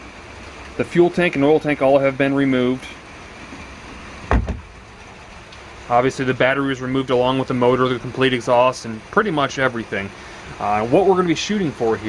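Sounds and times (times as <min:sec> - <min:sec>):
low thump: 0:04.2 - 0:04.8.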